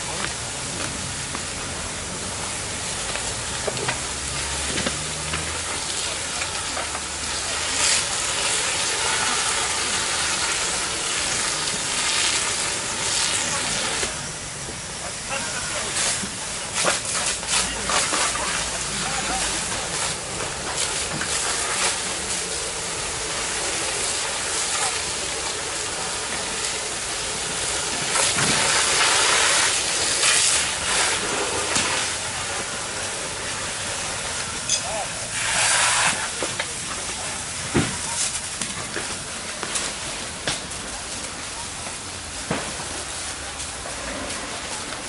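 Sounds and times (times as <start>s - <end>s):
water jet hissing rush: 0.0s - 45.0s.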